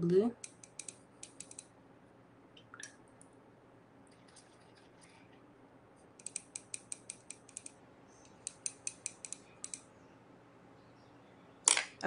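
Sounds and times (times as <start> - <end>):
brush ticking against metal palette: 6.2 - 9.8.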